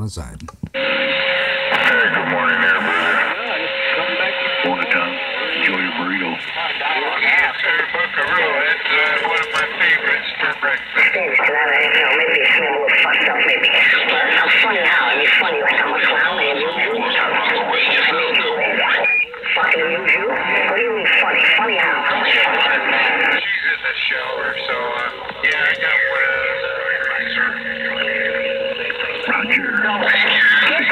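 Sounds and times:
garbled voices over radio speaker: 0:01.7 - 0:30.9.

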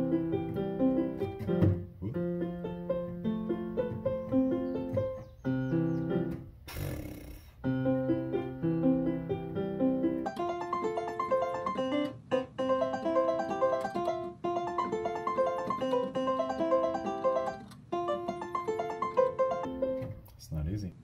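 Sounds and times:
electronic keyboard playing chords: 0:00.0 - 0:20.1
brief burst of noise: 0:06.7 - 0:07.6.

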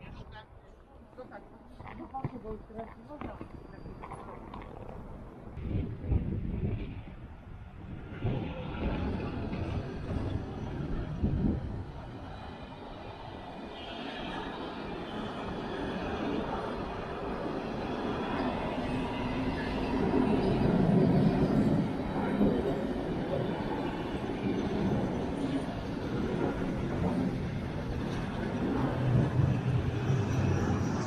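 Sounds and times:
wind buffeting microphone: 0:00.0 - 0:31.0
freight train rolling past: 0:02.4 - 0:31.0.

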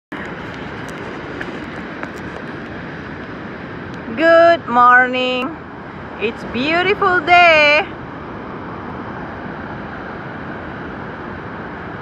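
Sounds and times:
ocean surf: 0:00.1 - 0:12.0
wind: 0:00.1 - 0:12.0.

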